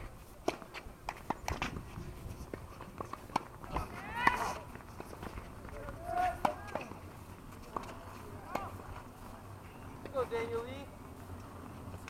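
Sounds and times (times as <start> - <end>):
tennis balls hitting rackets: 0.3 - 12.0
players calling out: 3.6 - 4.8, 5.6 - 10.8.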